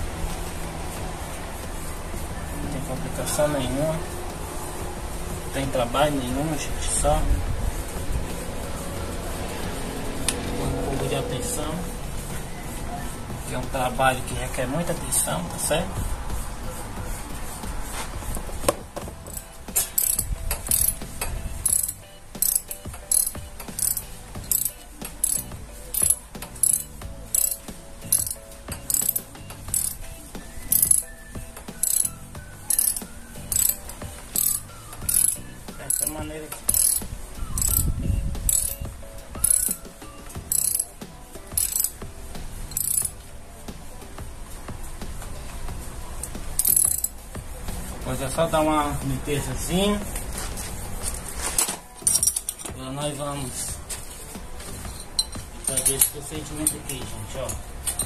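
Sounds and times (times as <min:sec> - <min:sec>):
ratchet wrench clicking: 0:19.2 - 0:30.1, 0:30.7 - 0:31.1, 0:31.7 - 0:38.8, 0:39.4 - 0:39.8, 0:40.4 - 0:42.0, 0:42.7 - 0:43.2, 0:46.2 - 0:47.2, 0:51.6 - 0:52.8, 0:54.9 - 0:58.0.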